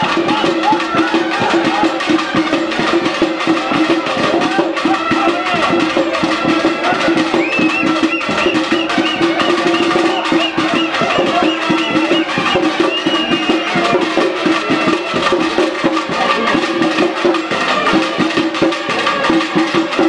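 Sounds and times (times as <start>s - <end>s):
fast dense drumming: 0.0s - 20.0s
high piping melody: 5.8s - 15.6s.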